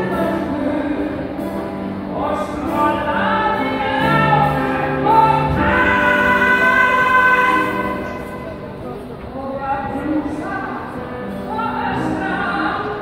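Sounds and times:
woman singing slow song: 0:00.0 - 0:08.6, 0:09.4 - 0:13.0
double bass: 0:00.0 - 0:08.8
grand piano: 0:00.0 - 0:13.0.

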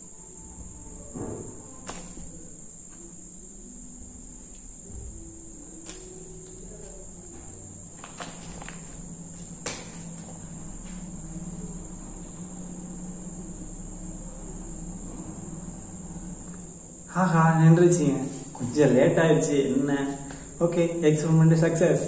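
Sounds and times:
cricket trilling: 0:00.0 - 0:22.0.

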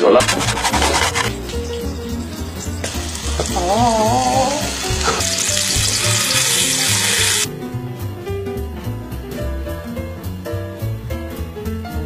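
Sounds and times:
spoon scraping round a bowl: 0:00.0 - 0:03.2.

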